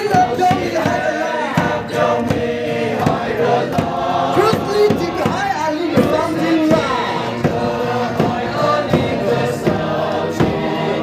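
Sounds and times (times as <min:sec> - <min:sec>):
crowd singing a hymn: 0:00.0 - 0:11.0
steady beat: 0:00.0 - 0:11.0.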